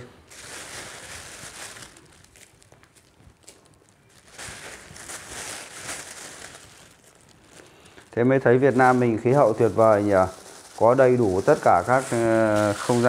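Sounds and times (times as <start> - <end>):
plastic bag crinkling: 0.0 - 13.0.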